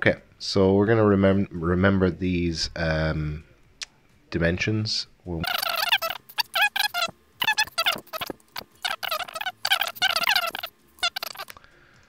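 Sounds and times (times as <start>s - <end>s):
sped up high-pitched voice chatter: 5.4s - 11.5s.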